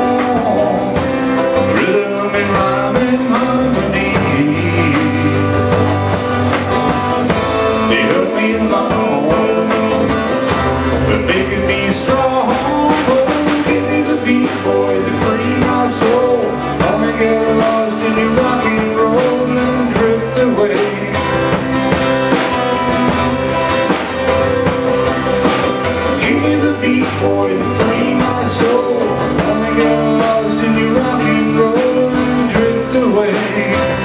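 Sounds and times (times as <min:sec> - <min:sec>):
acoustic guitar: 0:00.0 - 0:34.0
drums: 0:00.0 - 0:34.0.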